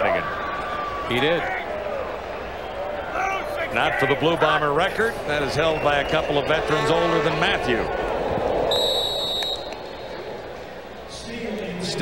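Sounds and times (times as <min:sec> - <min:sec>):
stadium crowd noise: 0:00.0 - 0:12.0
referee's whistle blast: 0:08.7 - 0:10.0.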